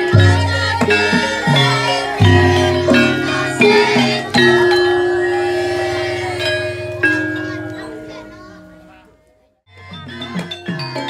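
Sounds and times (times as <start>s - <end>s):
gamelan bronze percussion ringing: 0.0s - 11.0s.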